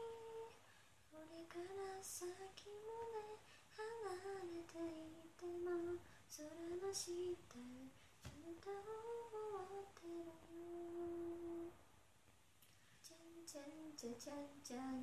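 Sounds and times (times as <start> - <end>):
woman singing unaccompanied: 0.0 - 11.8, 13.0 - 15.0.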